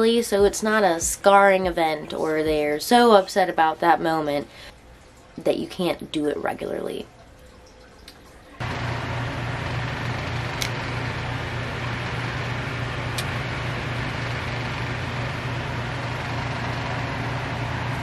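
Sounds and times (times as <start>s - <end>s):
low mechanical hum: 0.0s - 18.0s.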